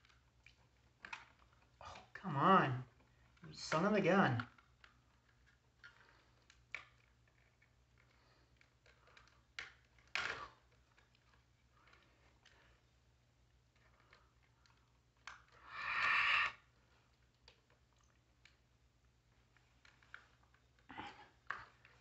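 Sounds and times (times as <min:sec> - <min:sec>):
plastic clicks and scrapes: 0:00.0 - 0:02.1, 0:04.4 - 0:13.0.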